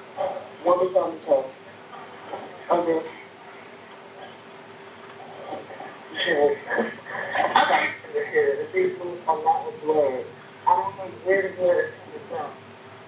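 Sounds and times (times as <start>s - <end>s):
voices talking on phone: 0.2s - 4.5s, 5.1s - 12.6s
phone line hum: 5.2s - 10.0s.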